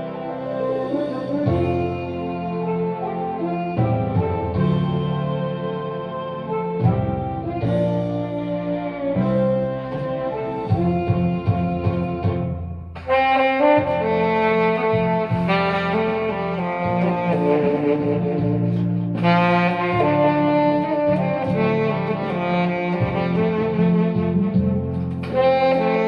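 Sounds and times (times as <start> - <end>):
backing accompaniment with bass line: 0.0 - 26.0
tenor saxophone melody: 0.0 - 26.0.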